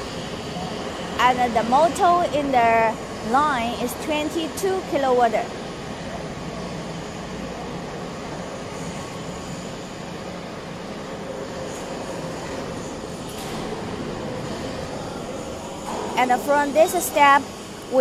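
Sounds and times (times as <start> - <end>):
machinery hum and rumble: 0.0 - 18.0.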